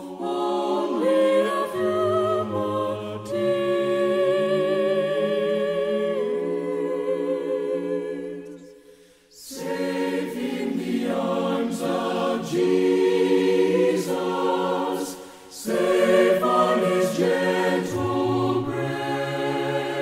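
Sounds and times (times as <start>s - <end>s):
choir singing long notes: 0.0s - 20.0s.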